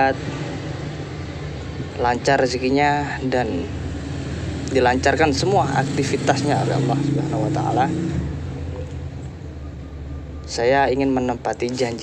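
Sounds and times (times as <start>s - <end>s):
person speaking: 10.5s - 12.0s.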